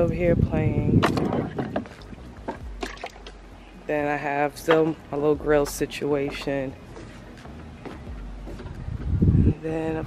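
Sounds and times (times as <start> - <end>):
water splashing and sloshing: 0.0 - 9.1.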